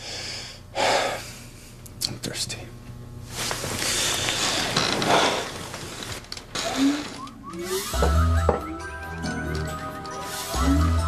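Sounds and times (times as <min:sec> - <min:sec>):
low music chord: 0:07.5 - 0:11.0.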